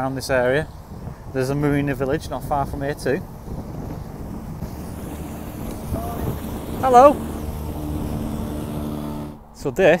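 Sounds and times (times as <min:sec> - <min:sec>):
boat engine droning: 0:03.6 - 0:09.7.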